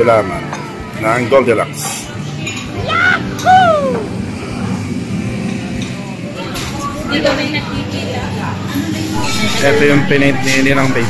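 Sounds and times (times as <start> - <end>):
dining area crowd din: 0.0 - 11.0.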